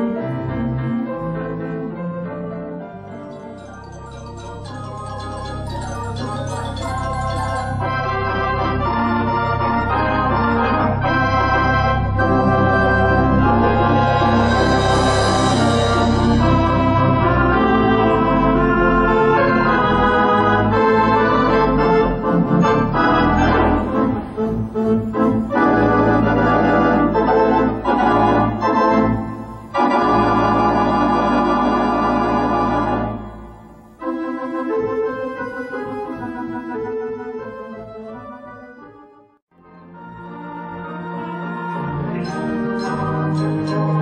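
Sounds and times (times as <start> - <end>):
organ playing sustained chords: 3.0 - 38.9, 39.6 - 44.0.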